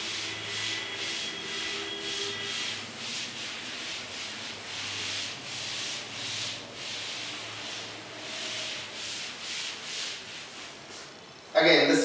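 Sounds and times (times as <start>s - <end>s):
duster wiping chalkboard: 0.0s - 11.2s.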